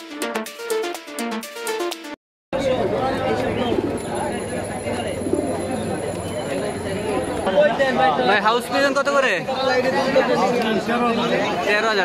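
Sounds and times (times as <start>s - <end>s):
background music: 0.0s - 2.2s
crowd chatter: 2.6s - 12.0s
pigeons cooing: 3.4s - 7.4s.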